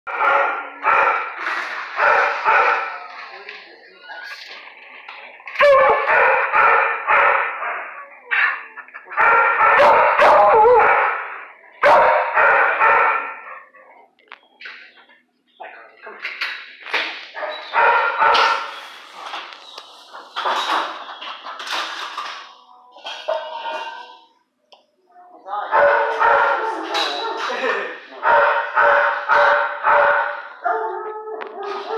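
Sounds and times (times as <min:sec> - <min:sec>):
dogs barking: 0:00.1 - 0:03.1, 0:05.5 - 0:14.1, 0:17.3 - 0:19.5, 0:25.6 - 0:31.9.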